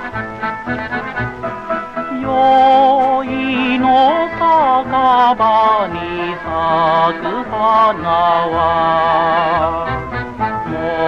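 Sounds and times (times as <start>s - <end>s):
instrumental accompaniment: 0.0s - 11.0s
old record of person singing: 0.0s - 11.0s.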